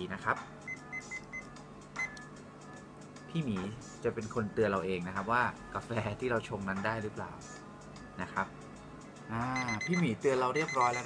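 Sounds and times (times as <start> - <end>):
kitchen timer beeps: 0.7 - 2.2, 9.6 - 11.0.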